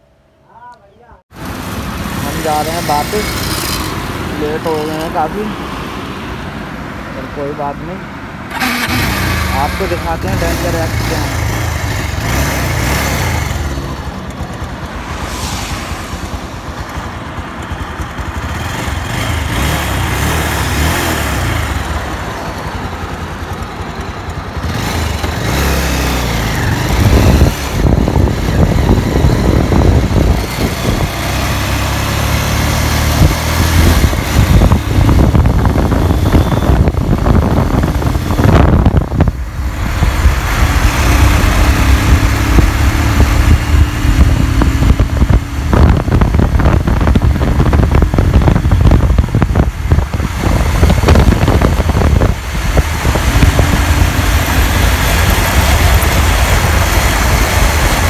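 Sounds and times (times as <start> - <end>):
motorcycle engine running: 1.3 - 5.5, 8.5 - 15.3, 16.0 - 58.0
wind buffeting microphone: 26.3 - 31.8, 33.0 - 58.0.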